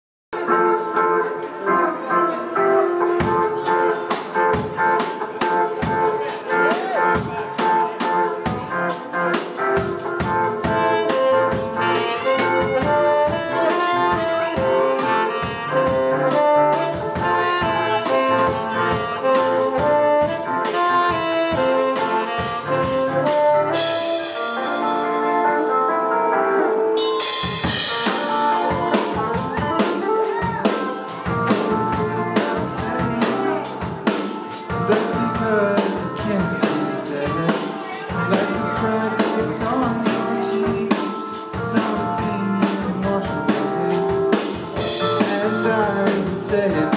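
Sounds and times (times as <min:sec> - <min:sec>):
keyboard: 0:00.3 - 0:46.9
drum kit: 0:00.4 - 0:46.9
electric guitar: 0:00.4 - 0:46.9
saxophone: 0:05.8 - 0:46.9.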